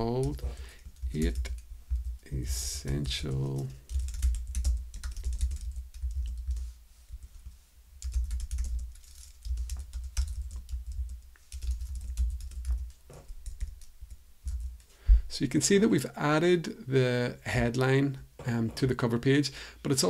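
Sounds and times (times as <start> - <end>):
computer keyboard typing: 0.0 - 6.6, 8.0 - 14.9.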